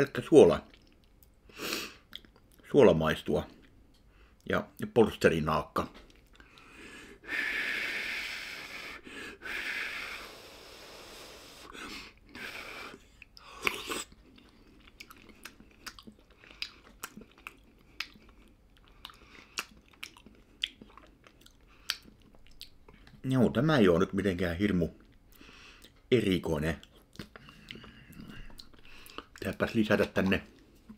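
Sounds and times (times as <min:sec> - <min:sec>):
chewing with wet mouth clicks: 0:00.6 - 0:01.4, 0:02.0 - 0:02.6, 0:06.0 - 0:06.7, 0:13.1 - 0:23.2, 0:24.9 - 0:26.0, 0:26.7 - 0:30.9
man breathing noisily: 0:06.4 - 0:13.7, 0:25.3 - 0:25.9.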